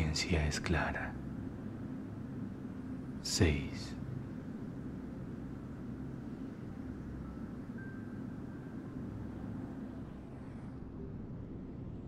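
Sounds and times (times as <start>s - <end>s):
ambient meditation drone: 0.0s - 12.0s.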